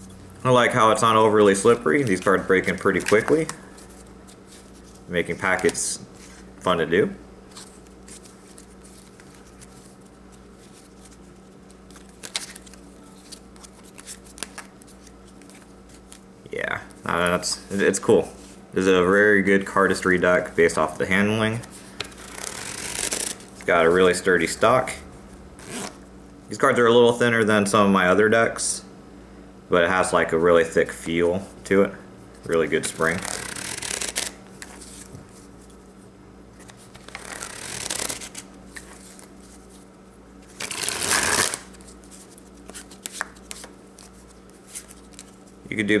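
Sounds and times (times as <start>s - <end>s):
low steady hum: 0.0s - 46.0s
playing cards fluttering: 7.5s - 16.2s, 21.5s - 23.7s, 32.7s - 35.5s, 36.6s - 39.8s, 40.4s - 45.5s
cards snapping: 11.7s - 16.2s, 32.9s - 34.8s, 36.6s - 38.9s, 40.6s - 41.8s, 42.6s - 44.1s
playing cards snapping and clicking: 42.6s - 43.7s.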